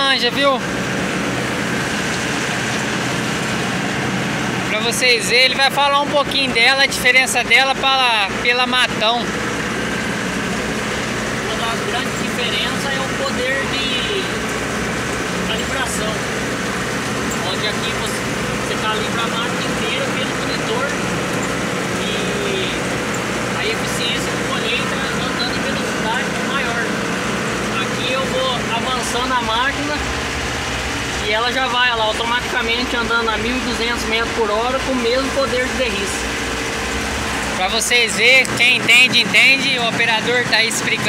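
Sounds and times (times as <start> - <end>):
man talking: 0.0 - 0.7, 4.7 - 9.3, 11.4 - 14.5, 15.5 - 16.3, 17.3 - 21.0, 22.0 - 22.9, 23.5 - 30.1, 31.2 - 36.3, 37.5 - 41.0
harvester engine drone: 0.0 - 41.0.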